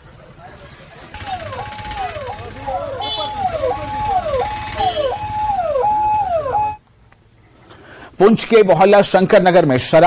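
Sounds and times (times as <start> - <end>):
low vehicle engine rumble: 0.0 - 7.1
emergency siren wailing: 1.1 - 6.8.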